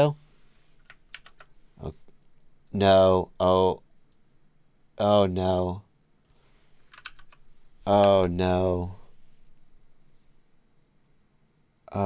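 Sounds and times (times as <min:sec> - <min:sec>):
keyboard keys clicking: 0:00.8 - 0:01.5, 0:06.9 - 0:07.4.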